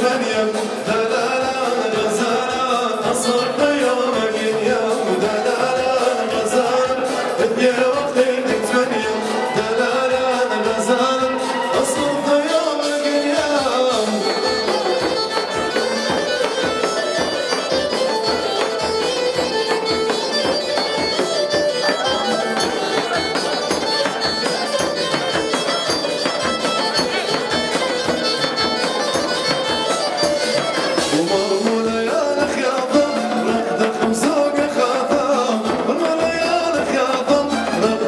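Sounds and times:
large drum fast rhythm: 0.0 - 38.0
shrill reed-pipe melody: 0.0 - 38.0.

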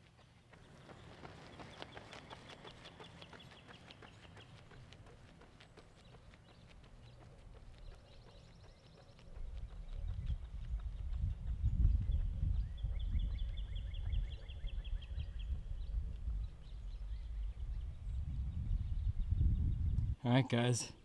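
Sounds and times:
wind buffeting microphone: 7.5 - 20.2.

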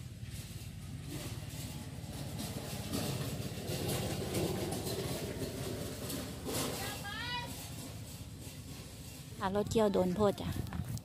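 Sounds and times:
combine harvester engine running: 0.0 - 10.5.

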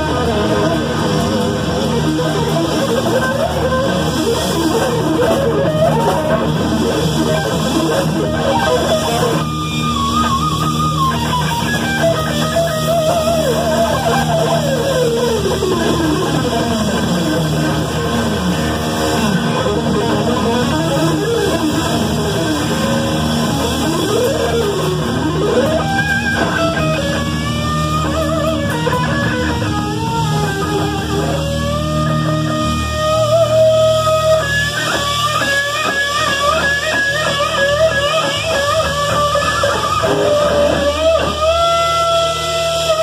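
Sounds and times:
heavy metal band playing: 0.0 - 43.0
lead electric guitar runs: 0.0 - 43.0.

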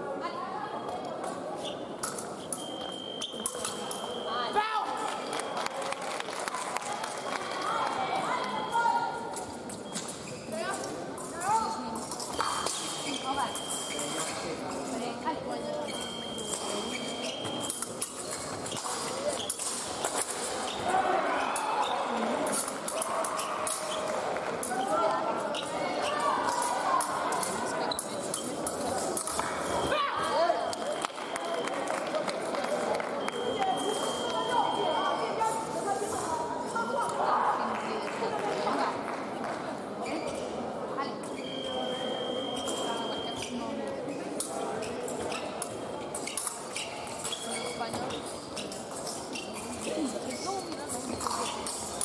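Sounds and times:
chatter of voices: 0.0 - 52.0
held high electronic beep: 12.4 - 14.3, 33.2 - 35.3, 41.4 - 43.5.

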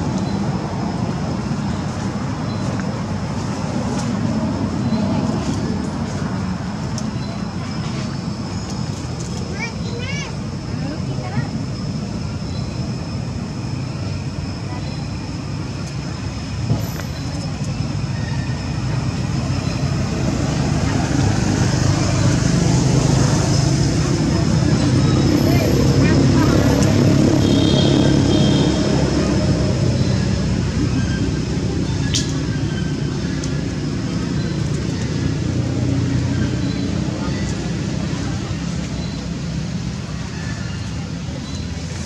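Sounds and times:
low traffic rumble: 0.0 - 42.0
faint voices: 3.4 - 42.0.

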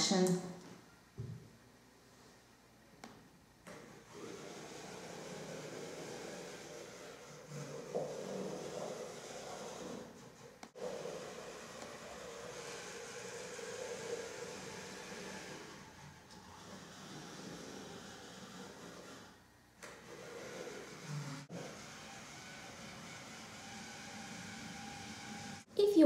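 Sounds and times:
gear motors whirring: 3.7 - 25.7.

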